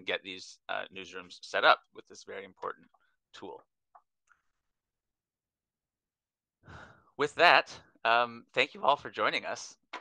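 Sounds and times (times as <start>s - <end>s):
person breathing in: 6.6s - 7.1s.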